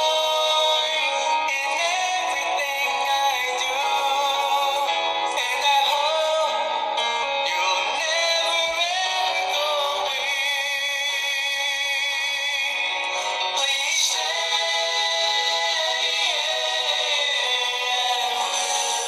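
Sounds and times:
man singing loudly: 0:00.0 - 0:19.0.

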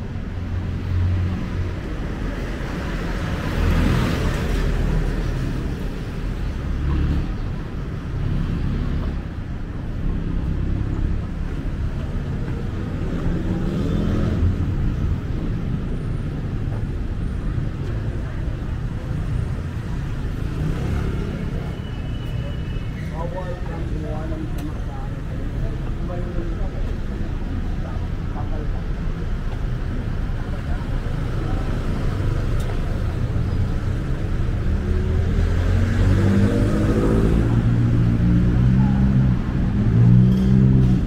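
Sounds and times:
road traffic noise: 0:00.0 - 0:41.0.

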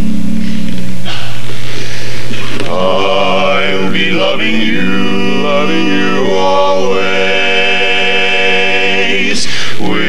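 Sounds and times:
male quartet singing in harmony: 0:01.9 - 0:10.0.

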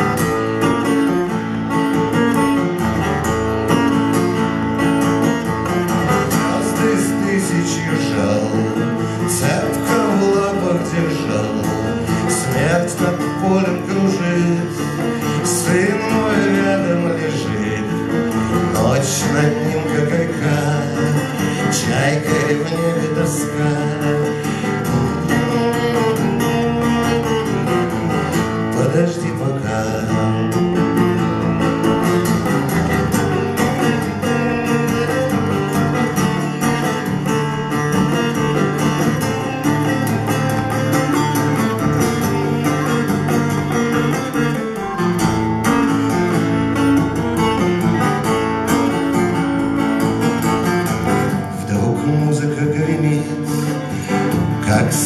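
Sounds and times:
acoustic guitar strumming: 0:00.0 - 0:55.0
man singing: 0:05.9 - 0:31.1, 0:50.6 - 0:55.0.

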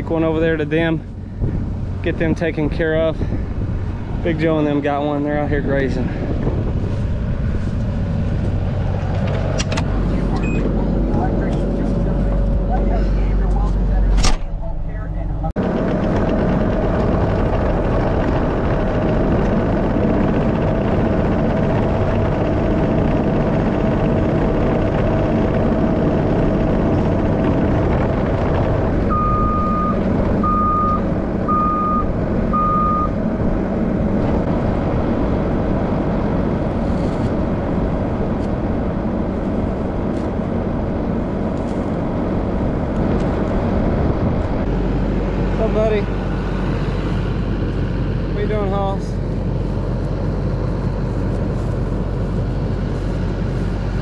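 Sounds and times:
diesel engine running: 0:00.0 - 0:54.0
reverse alarm beeps: 0:10.4 - 0:10.7, 0:29.1 - 0:33.2.

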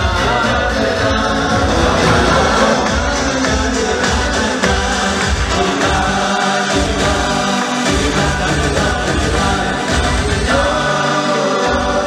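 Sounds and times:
pulsing bass: 0:00.0 - 0:10.8
band playing dance music: 0:00.0 - 0:12.0
voices singing together: 0:00.0 - 0:12.0.

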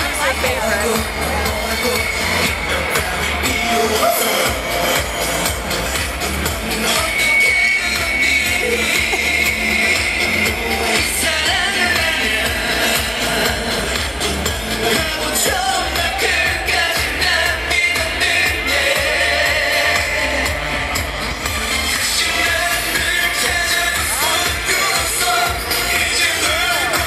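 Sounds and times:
man singing: 0:00.0 - 0:27.0
pop song over sound system: 0:00.0 - 0:27.0.

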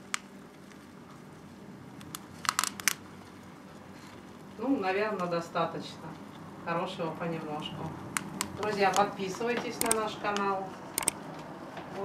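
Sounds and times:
plastic cup crackling: 0:02.0 - 0:04.4.

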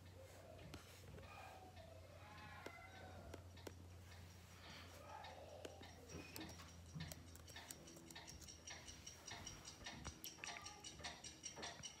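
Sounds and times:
clocks ticking through tv speakers: 0:01.7 - 0:12.0.

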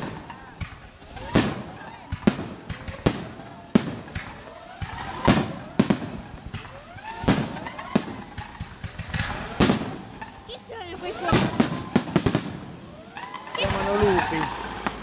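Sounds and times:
firework pops and crackle: 0:00.0 - 0:15.0
firework shells bursting: 0:00.0 - 0:15.0.

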